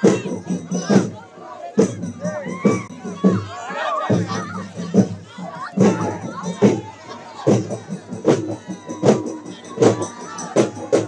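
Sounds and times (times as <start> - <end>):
crowd shouting and cheering: 0.0 - 11.0
drum beats: 0.0 - 11.0.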